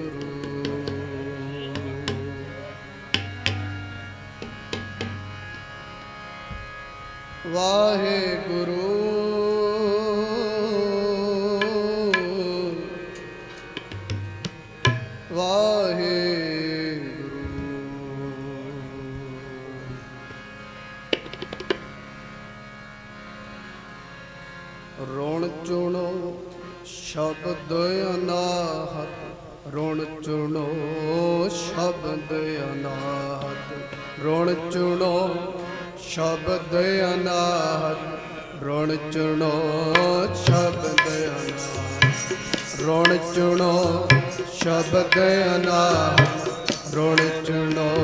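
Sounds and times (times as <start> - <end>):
harmonium chords: 0.0 - 48.0
tabla strokes: 0.2 - 5.6, 11.6 - 12.4, 13.6 - 15.2, 21.1 - 21.9, 40.0 - 48.0.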